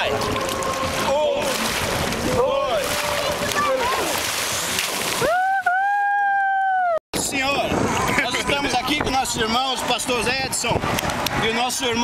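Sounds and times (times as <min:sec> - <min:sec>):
water splashing and sloshing: 0:00.0 - 0:05.8, 0:07.2 - 0:12.0
long held shout: 0:05.2 - 0:07.0.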